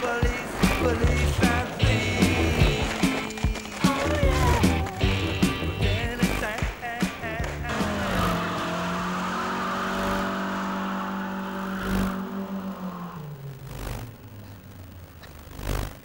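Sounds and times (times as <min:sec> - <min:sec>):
soundtrack music: 0:00.0 - 0:09.5
tyres screeching: 0:00.0 - 0:16.0
car engine at high revs: 0:07.6 - 0:16.0.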